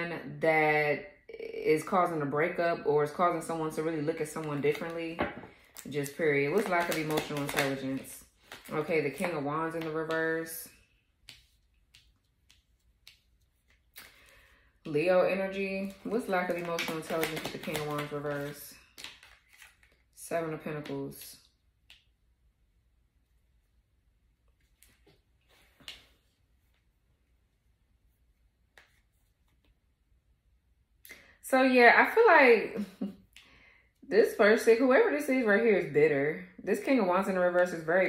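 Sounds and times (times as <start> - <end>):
soft card rustle: 4.0 - 14.7, 15.5 - 20.2, 24.5 - 27.0, 28.1 - 29.9.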